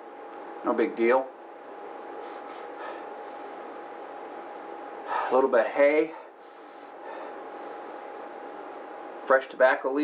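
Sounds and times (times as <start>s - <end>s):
room tone hiss: 0.0s - 10.0s
thin constant whine: 0.0s - 10.0s.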